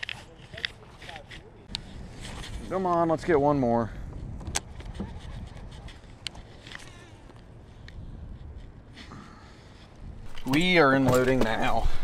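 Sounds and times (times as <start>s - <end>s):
wind rumbling on microphone: 1.7s - 12.0s.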